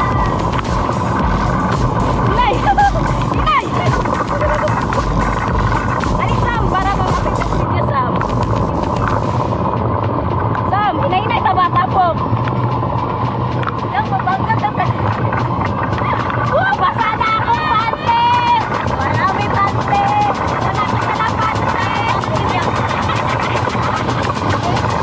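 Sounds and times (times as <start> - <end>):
wind rumbling on microphone: 0.0 - 25.0.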